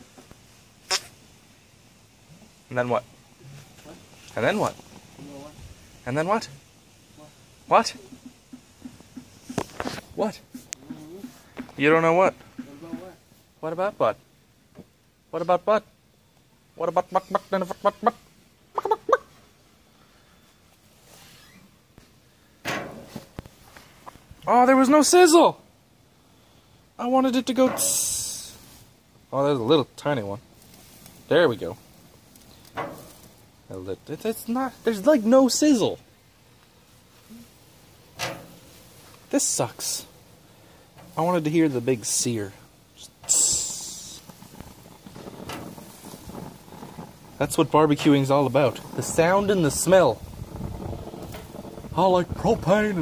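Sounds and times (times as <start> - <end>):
hot dogs sizzling on a grill: 0.0 - 53.0
hiccup-like voice sound: 0.9 - 1.1
loud rustling from handling: 43.5 - 51.9.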